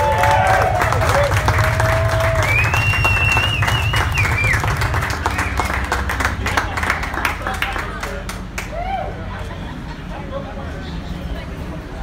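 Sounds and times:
steady low hum: 0:00.0 - 0:07.6
audience applauding: 0:00.0 - 0:09.0.

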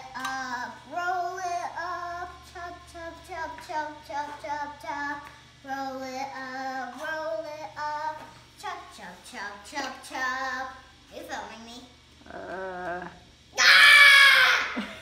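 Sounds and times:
girl singing wordless tune: 0:00.0 - 0:12.0.

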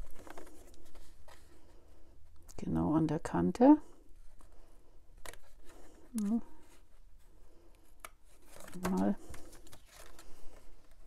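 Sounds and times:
card rustling: 0:00.0 - 0:02.1, 0:04.2 - 0:11.0.

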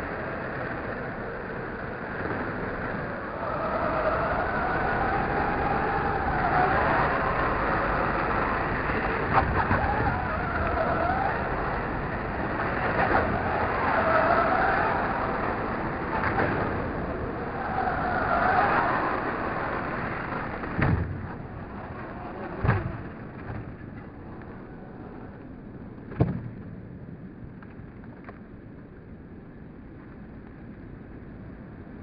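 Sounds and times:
rc car motors whining: 0:00.0 - 0:25.8
tyres on dirt: 0:00.0 - 0:26.8.

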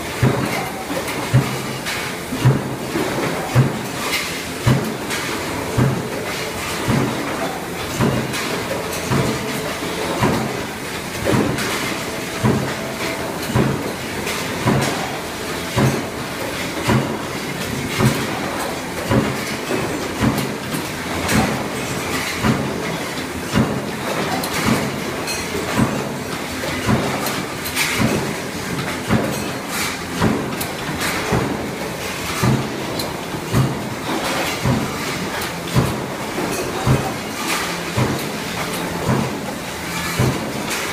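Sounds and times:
machinery clattering: 0:00.0 - 0:40.9.

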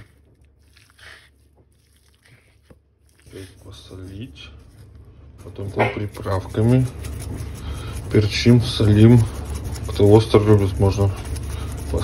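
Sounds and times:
hand kneading raw meat: 0:00.0 - 0:12.0.

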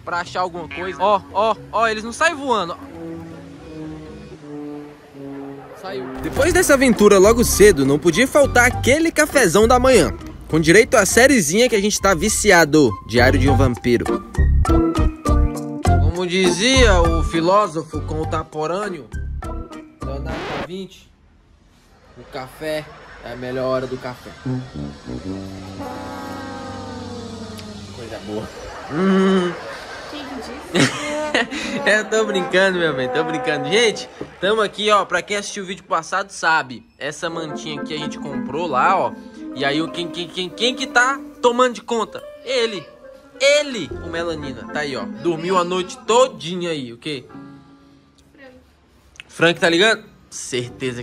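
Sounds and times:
slow instrumental music: 0:00.5 - 0:20.7, 0:24.3 - 0:29.6, 0:30.8 - 0:34.4, 0:37.3 - 0:49.1
man humming hmm: 0:24.4 - 0:27.9, 0:28.9 - 0:29.6.

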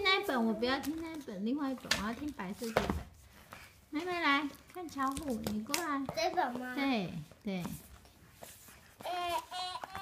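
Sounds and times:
small child's voice: 0:06.1 - 0:06.8, 0:09.0 - 0:10.0.

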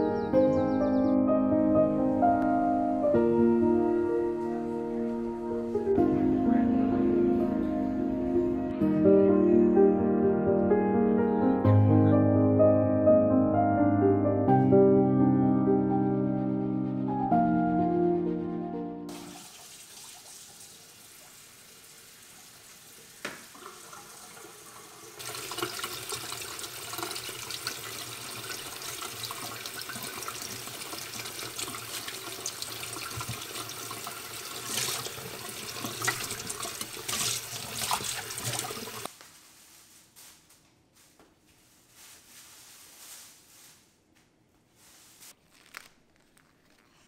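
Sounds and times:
tap water splashing into bowl: 0:23.2 - 0:24.0, 0:32.9 - 0:33.7.

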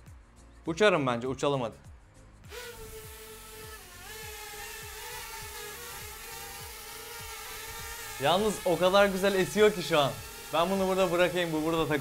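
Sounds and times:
background music with steady beat: 0:00.0 - 0:12.0
quadcopter motors whining: 0:02.5 - 0:12.0.

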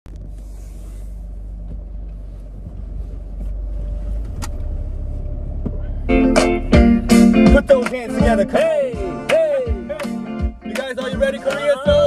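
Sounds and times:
car engine rumble inside cabin: 0:00.0 - 0:12.0.

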